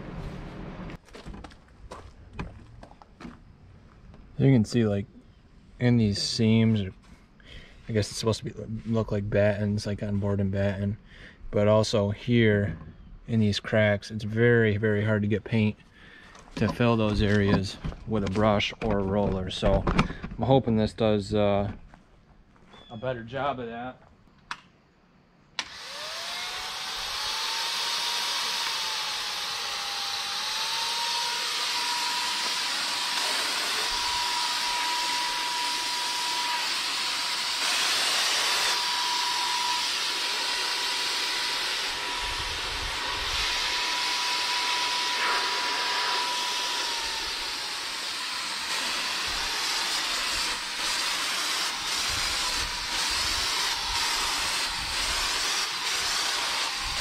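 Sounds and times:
paint sprayer turbine whine: 25.6s - 57.0s.

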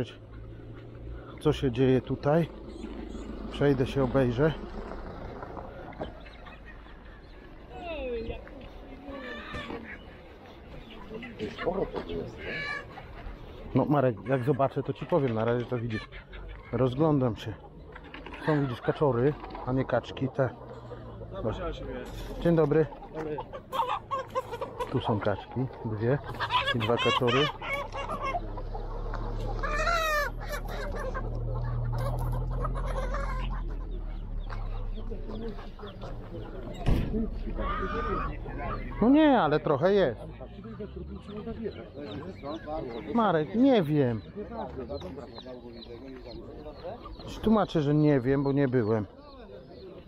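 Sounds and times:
ducks geese and chickens calling: 0.0s - 50.0s
people talking nearby: 1.3s - 50.0s
chicken squawk: 10.8s - 16.8s, 22.9s - 35.0s, 37.3s - 39.0s.

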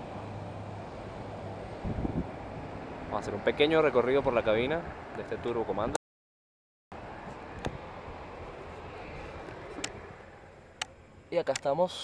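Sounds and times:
wind on microphone: 1.7s - 2.9s.

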